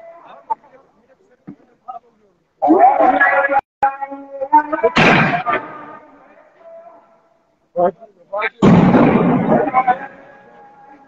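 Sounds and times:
explosive blast with rumble: 0:08.6 - 0:09.7.

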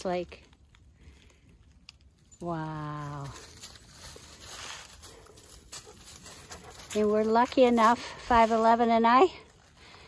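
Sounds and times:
dog panting faintly: 0:05.0 - 0:08.5.

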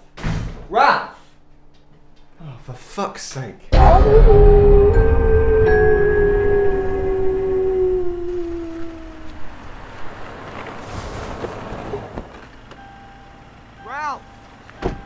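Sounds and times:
sharp knock: 0:03.8 - 0:09.6
man howling: 0:03.8 - 0:10.0
short rising and falling cry: 0:03.8 - 0:10.3.

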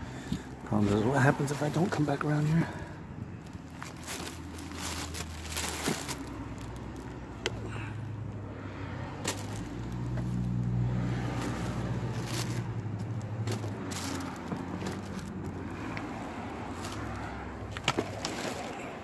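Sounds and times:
car engine humming: 0:00.0 - 0:19.0
items clicking and rustling: 0:03.5 - 0:07.6, 0:11.4 - 0:16.1, 0:16.8 - 0:18.9.

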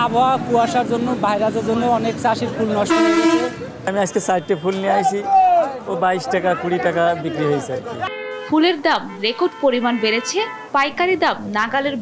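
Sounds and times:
vehicle horn toot: 0:02.9 - 0:05.0, 0:08.0 - 0:10.7.

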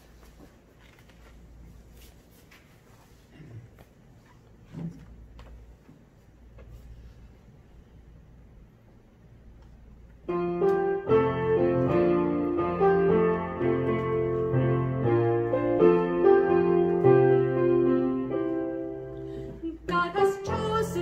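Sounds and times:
piano playing hymn chords: 0:10.2 - 0:21.0.

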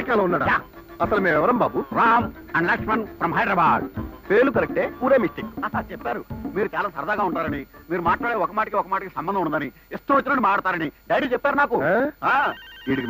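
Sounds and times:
mobile phone ringing: 0:00.0 - 0:06.5, 0:12.4 - 0:13.0
men talking: 0:00.0 - 0:13.0.

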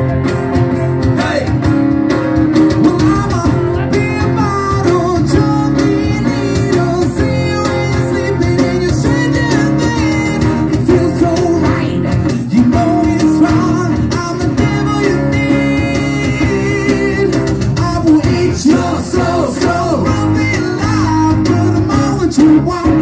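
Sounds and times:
acoustic guitars strummed: 0:00.0 - 0:23.0
hand percussion beat: 0:00.0 - 0:23.0
person singing into microphone: 0:02.8 - 0:23.0.

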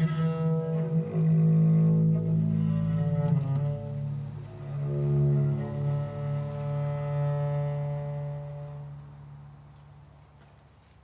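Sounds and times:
bowed viol low note: 0:00.0 - 0:09.8.

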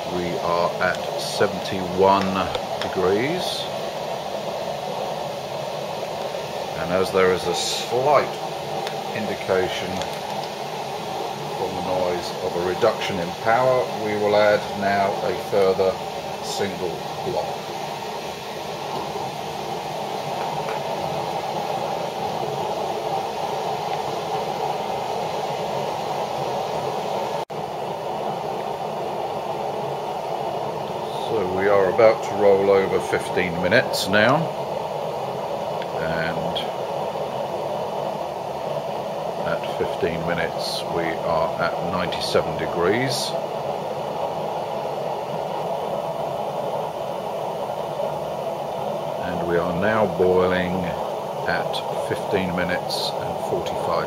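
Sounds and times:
fuel blocks burning: 0:00.0 - 0:54.0
stove fan rushing: 0:00.0 - 0:54.0
water boiling in a pot: 0:00.0 - 0:54.0.

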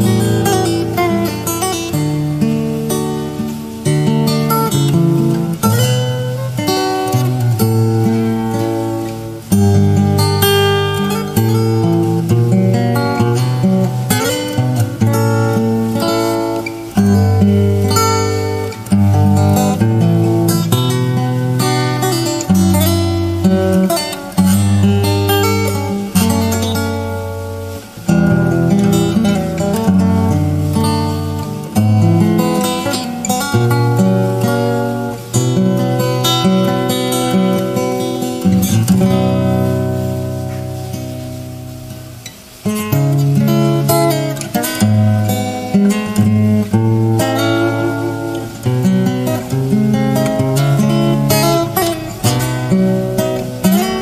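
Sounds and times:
fingerstyle acoustic guitar: 0:00.0 - 0:54.0.

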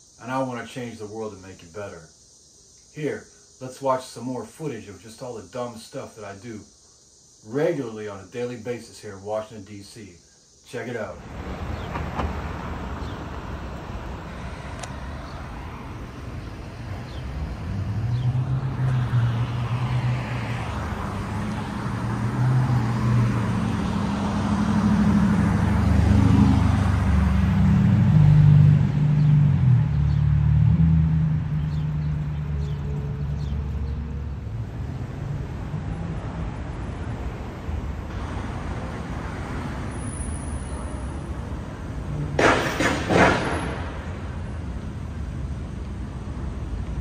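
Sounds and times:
cars passing on street: 0:10.5 - 0:47.0
vehicle engine: 0:11.2 - 0:47.0.

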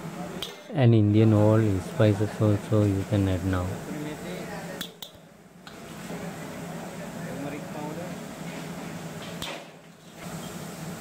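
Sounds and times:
kitchen hiss: 0:05.8 - 0:11.0.

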